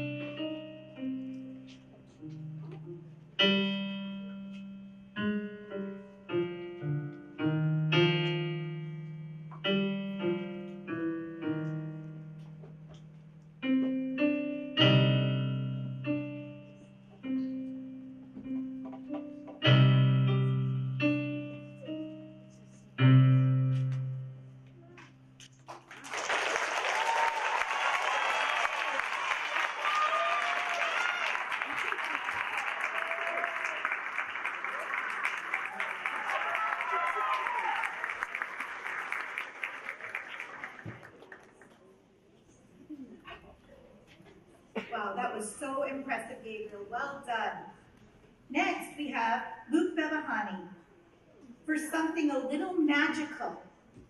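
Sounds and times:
piano piece on digital keyboard: 0.0s - 25.6s
audience applause with cheering: 25.7s - 41.6s.

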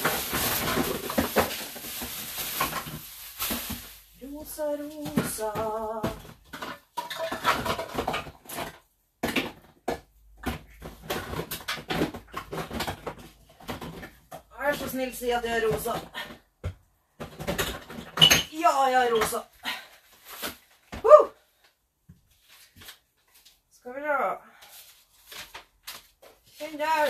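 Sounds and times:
rustling: 0.0s - 6.0s
pots and utensils clinking: 6.6s - 8.3s.

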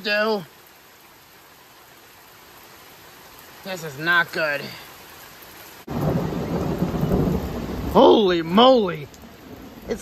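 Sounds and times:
rain falling: 0.0s - 10.0s
thunder rumbling: 5.9s - 10.0s.

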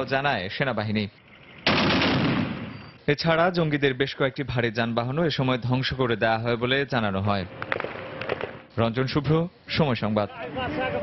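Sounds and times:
automatic gunfire: 1.6s - 2.7s.

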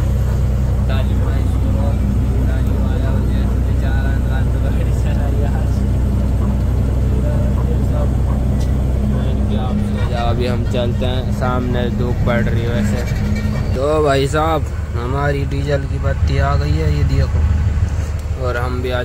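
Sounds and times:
truck diesel engine running: 0.0s - 19.0s.

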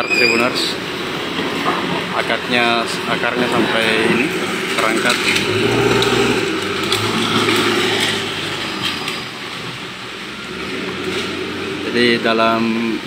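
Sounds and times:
diesel engine running: 0.7s - 13.0s.

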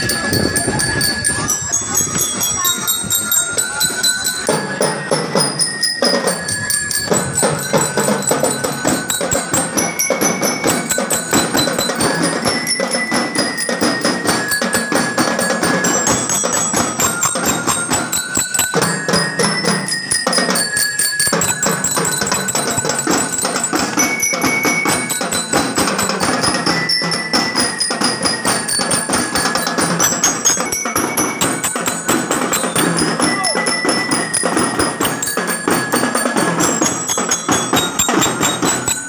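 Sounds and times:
bell lyres playing melody: 0.0s - 39.0s
marching drums beat: 4.4s - 39.0s.

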